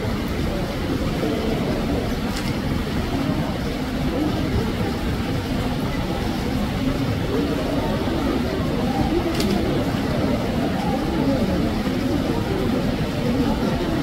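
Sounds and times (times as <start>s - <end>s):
low rumbling background noise: 0.0s - 14.0s
murmur of voices: 0.0s - 14.0s.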